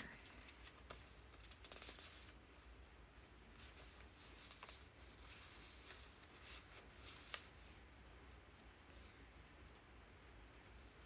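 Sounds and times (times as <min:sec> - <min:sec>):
paper letter rustling: 0:00.0 - 0:07.9
low steady hum: 0:00.0 - 0:11.0.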